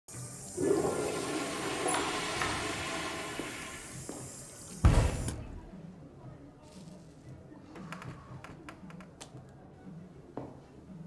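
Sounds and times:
toilet flushing: 0.1s - 5.4s.

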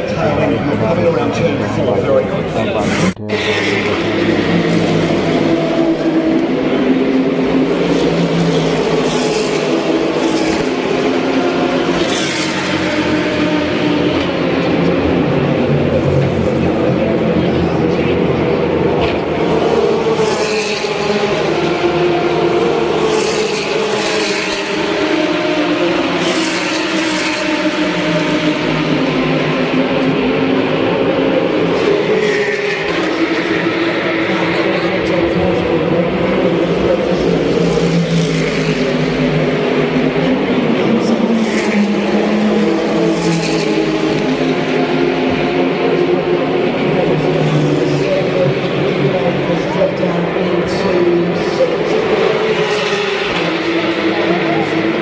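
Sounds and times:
race car engines passing: 0.0s - 55.0s.

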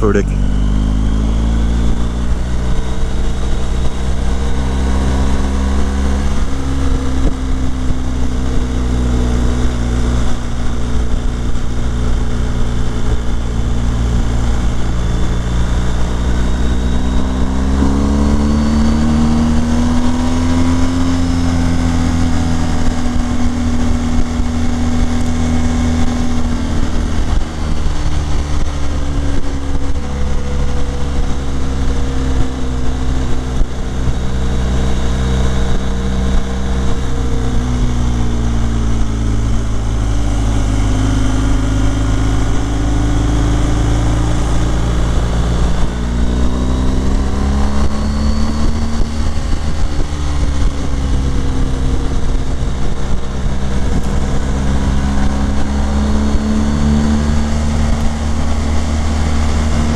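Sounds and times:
motorcycle engine running: 0.0s - 59.9s
wind noise: 0.4s - 59.9s.

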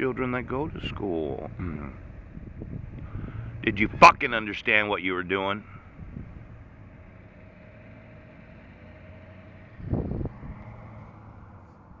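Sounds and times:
low outdoor hum: 0.0s - 12.0s.

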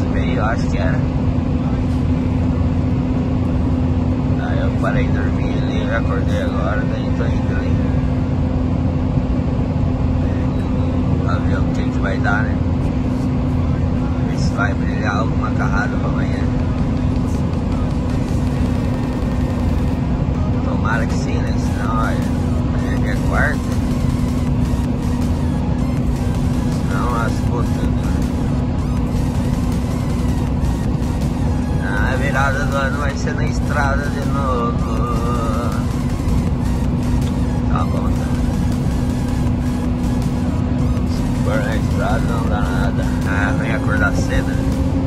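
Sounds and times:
low hum: 0.0s - 45.0s
truck engine and road drone: 0.0s - 45.0s.

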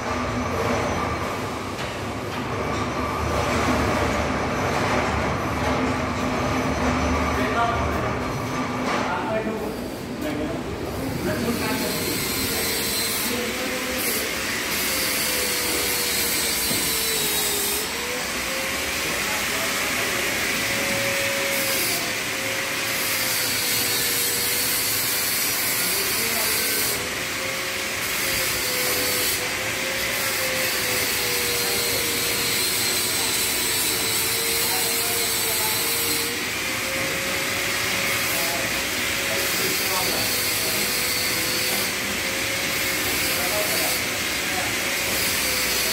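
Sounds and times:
machinery hissing and whirring: 0.0s - 45.9s.

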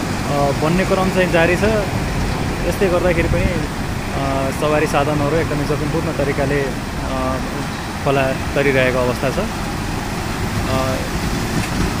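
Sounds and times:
fast-flowing floodwater: 0.0s - 12.0s
truck engine: 0.0s - 12.0s
man speaking: 0.3s - 2.0s, 2.6s - 9.6s, 10.6s - 11.2s.

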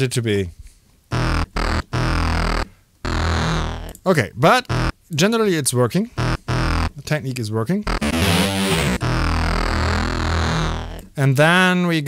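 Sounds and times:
sampled sound notes: 7.9s - 11.1s.

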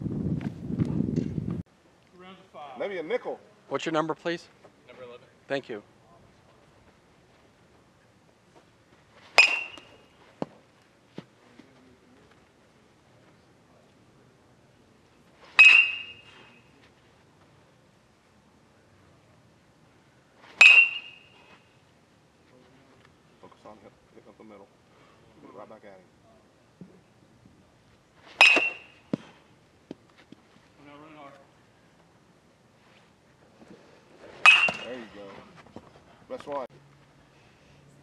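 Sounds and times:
baseball bat cracking ball: 9.3s - 10.6s, 15.5s - 16.6s, 20.5s - 21.4s, 28.3s - 29.3s, 34.3s - 35.1s.

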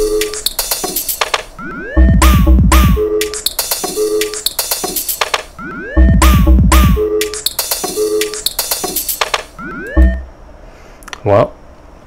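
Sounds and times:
drum machine dance beat: 0.0s - 10.2s
repeated synth tone: 1.6s - 10.4s.

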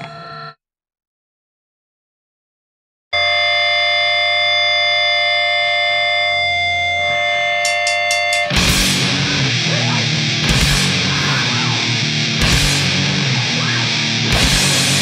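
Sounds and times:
steady drone of held tones: 3.2s - 15.0s
song ringing out: 6.1s - 15.0s.

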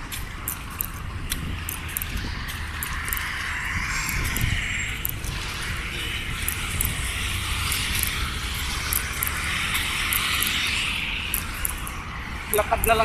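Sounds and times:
road traffic rumble: 0.0s - 13.0s
vehicles passing: 0.0s - 13.0s.

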